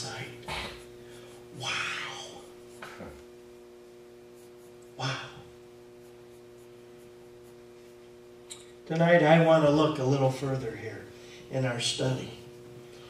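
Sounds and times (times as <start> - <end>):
steady low hum: 0.0 - 13.0
man saying wow: 1.6 - 2.5, 5.0 - 5.5.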